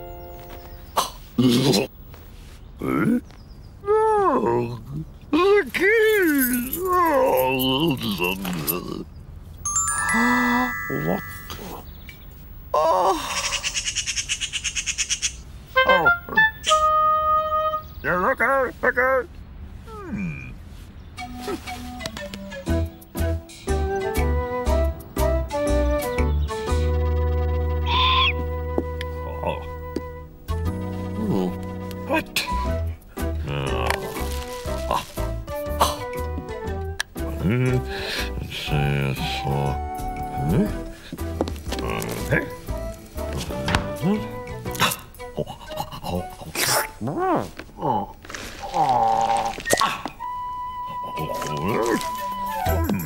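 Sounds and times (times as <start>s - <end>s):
cartoon background music: 9.7s - 11.9s, 15.8s - 18.0s, 21.2s - 47.0s, 49.6s - 53.0s.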